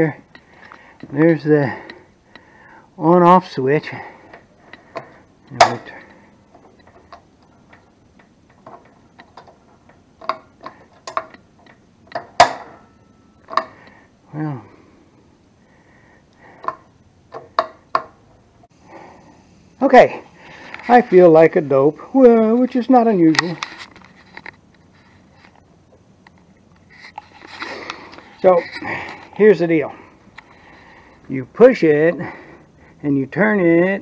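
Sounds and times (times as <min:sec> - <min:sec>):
camera handling rustling: 0:23.4 - 0:25.6.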